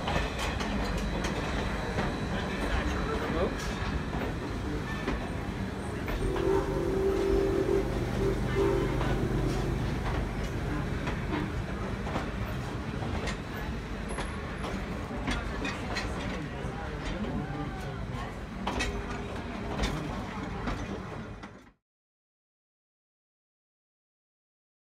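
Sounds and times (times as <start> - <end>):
train coaches rumbling past: 0.0 - 21.6
wheels clicking on rails: 0.0 - 21.7
steady tone: 6.1 - 12.0.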